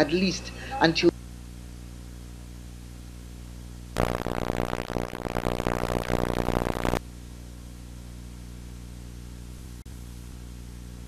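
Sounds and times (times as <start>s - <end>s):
low electrical hum: 0.0s - 11.0s
buzzy tv audio: 4.0s - 7.0s.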